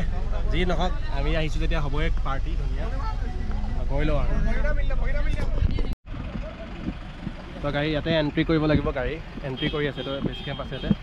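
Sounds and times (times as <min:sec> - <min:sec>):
bus engine rumble: 0:00.0 - 0:11.0
voices: 0:00.0 - 0:11.0.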